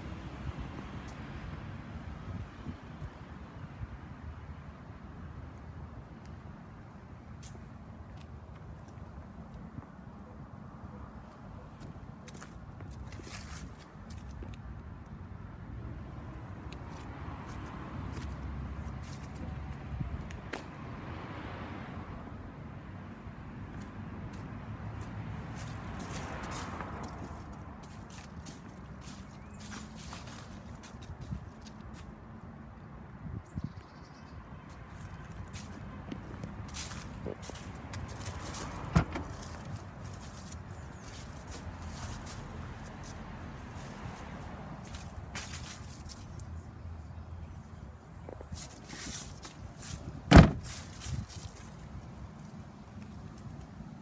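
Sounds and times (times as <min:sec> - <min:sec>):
footsteps crunching through dry leaves: 0:12.3 - 0:14.4, 0:23.8 - 0:32.1, 0:34.9 - 0:46.5, 0:48.4 - 0:52.2.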